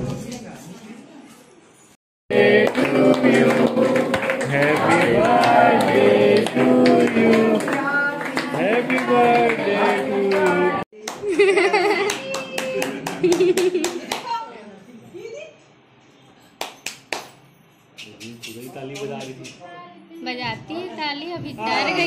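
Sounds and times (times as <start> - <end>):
group singing a birthday tune: 2.3 - 10.9
people clapping in time: 2.3 - 14.4.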